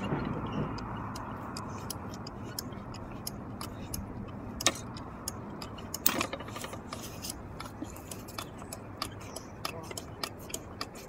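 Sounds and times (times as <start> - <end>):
low outdoor rumble: 0.0 - 11.0
quick ticking clicks: 0.0 - 11.0.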